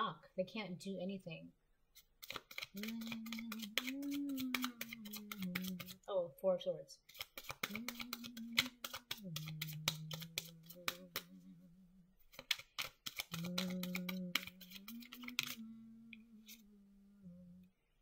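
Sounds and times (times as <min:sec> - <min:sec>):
cards shuffling clicks: 0:02.0 - 0:06.0, 0:07.1 - 0:11.5, 0:12.3 - 0:15.7
person humming low notes: 0:02.8 - 0:06.0, 0:07.6 - 0:12.2, 0:13.3 - 0:17.7.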